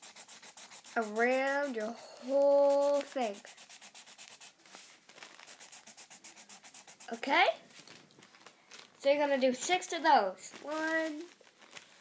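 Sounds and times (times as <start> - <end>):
marker scribbling on paper: 0.0 - 4.6, 5.4 - 7.4.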